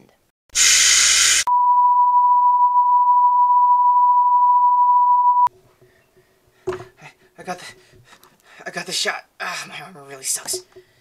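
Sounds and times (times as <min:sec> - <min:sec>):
high-pitched beep tone: 0:01.5 - 0:05.5.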